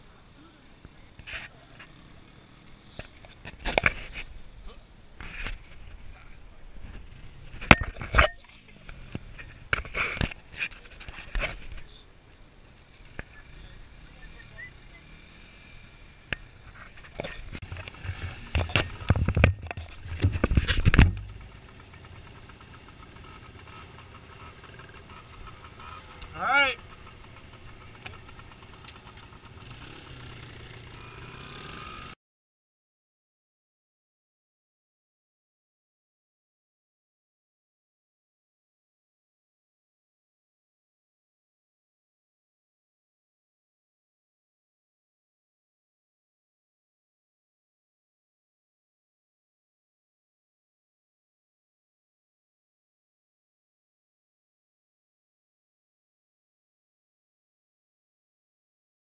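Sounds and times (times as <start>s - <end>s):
dirt bike engines running: 0.0s - 32.2s
dirt bike engine revving: 13.4s - 16.6s, 17.2s - 19.1s, 21.1s - 32.2s
knocks and bumps on microphone: 16.8s - 21.6s.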